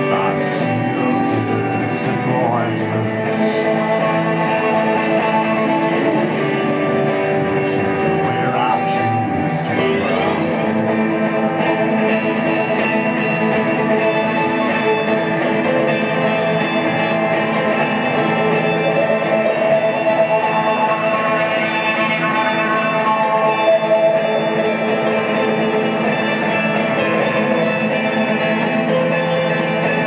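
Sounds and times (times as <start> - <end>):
electric guitars strumming: 0.0 - 30.0
violin playing long notes: 2.9 - 28.2.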